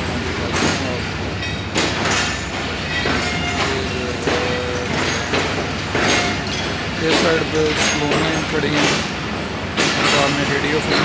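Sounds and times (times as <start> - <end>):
train coaches rumbling past: 0.0 - 11.0
wheels clacking on rail joints: 0.0 - 11.0.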